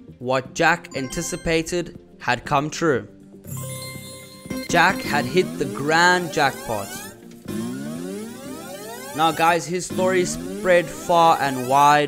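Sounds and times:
synthesized tone rising in pitch: 4.9 - 11.8.

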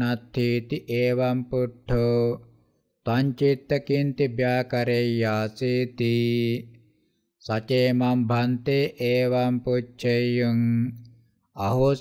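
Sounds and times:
man chanting: 0.0 - 2.5, 3.1 - 6.8, 7.4 - 11.0, 11.6 - 12.0.

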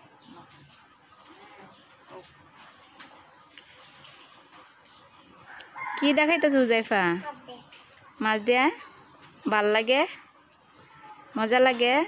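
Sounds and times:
rooster crowing: 5.5 - 6.6.

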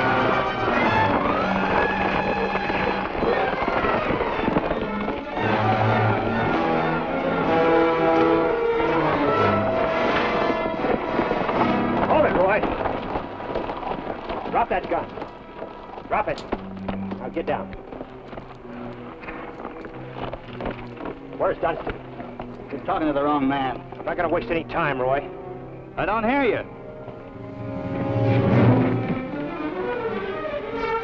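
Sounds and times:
horses shifting and snorting: 0.0 - 30.1
orchestral music: 5.2 - 12.6, 22.0 - 31.0.

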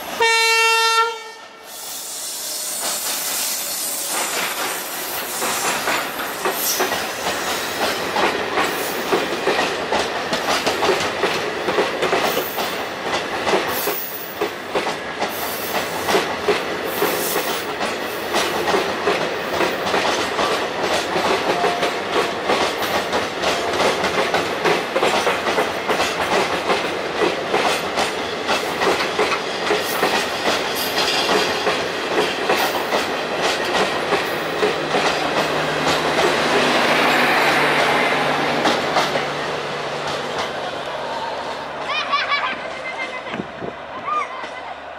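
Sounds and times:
train rumble: 2.0 - 44.9
train wheels clicking over rail joints: 2.2 - 41.0.

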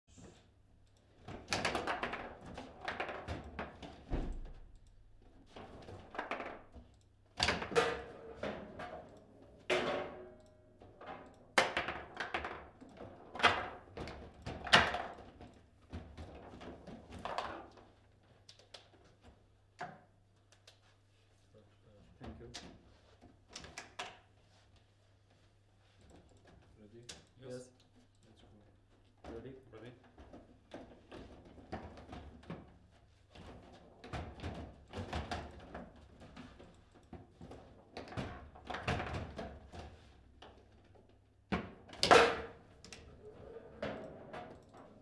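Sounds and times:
foosball knocks and thuds: 7.4 - 15.1, 41.5 - 42.7.

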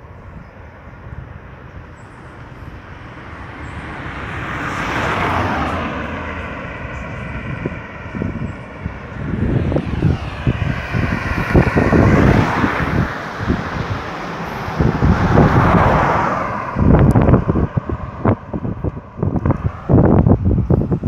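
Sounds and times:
car approaching: 0.0 - 21.0
wind buffeting microphone: 0.0 - 21.0
car passing by: 1.9 - 21.0.

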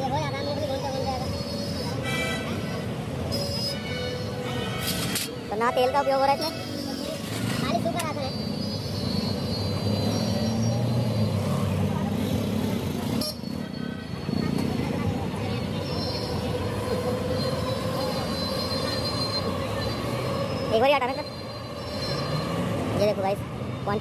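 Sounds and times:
low traffic rumble: 0.0 - 24.0
scattered voices: 11.3 - 24.0
car horns: 13.1 - 13.6.

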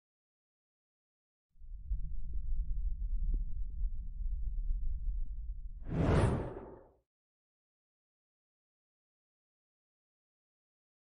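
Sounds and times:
low rumble: 1.6 - 6.8
short whoosh: 5.9 - 6.9.

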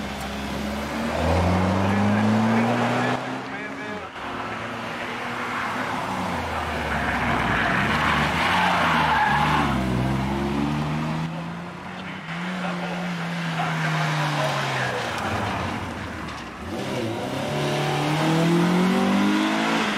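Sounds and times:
race car engines revving: 0.0 - 19.9.

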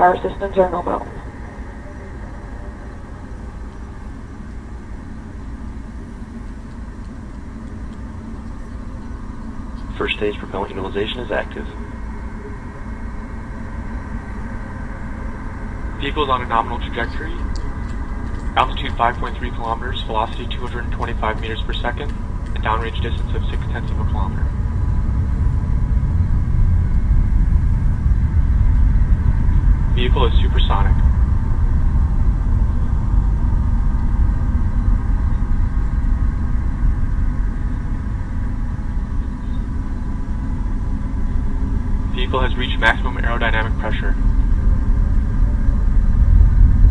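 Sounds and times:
rocket engines rumbling: 0.0 - 46.9.

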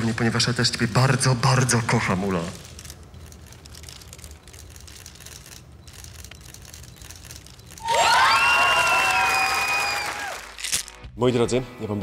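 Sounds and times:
audience applause: 7.8 - 10.6.

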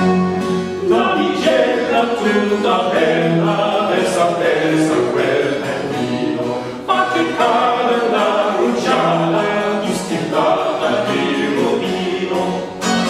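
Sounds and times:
men singing in harmony: 0.6 - 13.0.

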